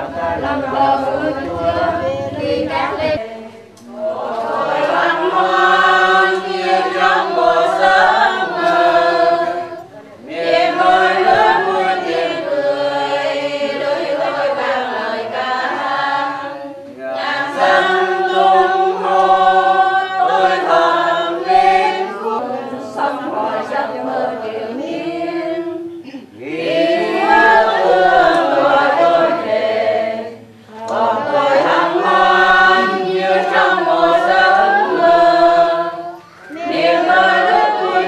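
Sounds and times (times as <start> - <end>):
group singing a prayer in unison: 0.0 - 38.0.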